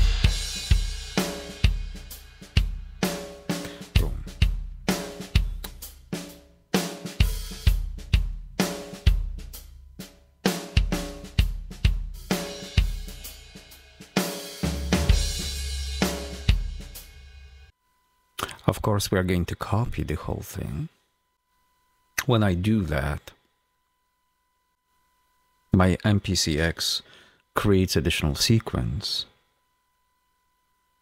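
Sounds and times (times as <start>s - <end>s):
drum kit playing grooves: 0.0s - 17.7s.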